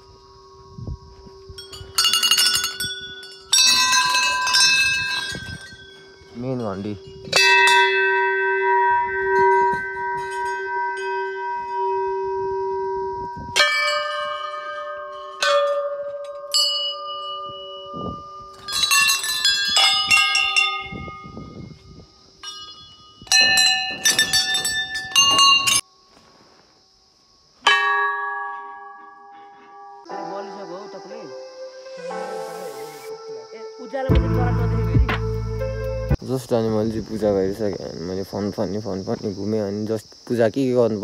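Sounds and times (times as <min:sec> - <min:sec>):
brass bells ringing: 0:01.6 - 0:21.4, 0:22.4 - 0:25.8.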